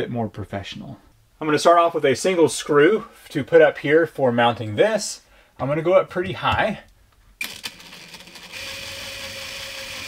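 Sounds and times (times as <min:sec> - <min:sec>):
cordless drill driving screw into wood: 0:07.4 - 0:10.0.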